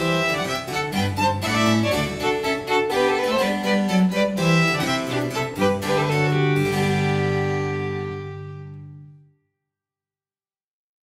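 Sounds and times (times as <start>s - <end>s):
bowed strings: 0.0s - 9.2s
harpsichord plucked chords: 0.0s - 9.2s.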